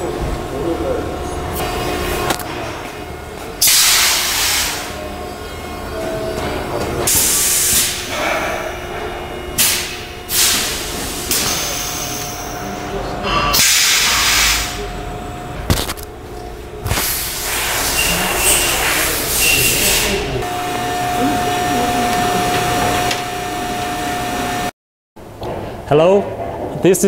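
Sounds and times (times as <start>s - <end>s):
workshop noise: 0.0s - 27.0s
compressed air hissing bursts: 3.6s - 4.9s, 7.1s - 8.0s, 9.6s - 11.4s, 13.6s - 14.8s, 16.9s - 20.2s.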